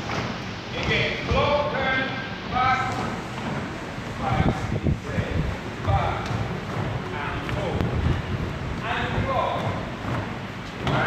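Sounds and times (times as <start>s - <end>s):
dancers' feet on wooden floor: 0.0s - 1.8s, 2.5s - 11.0s.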